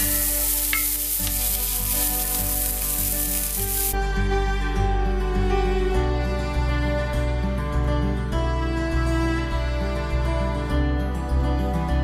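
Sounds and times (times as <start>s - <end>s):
onions and garlic sizzling in a skillet: 0.0s - 4.0s.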